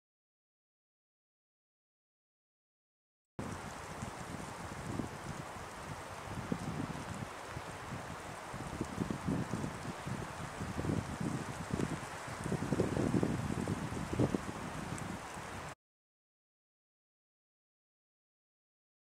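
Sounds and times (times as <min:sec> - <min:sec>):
wind on microphone: 0:03.4 - 0:15.8.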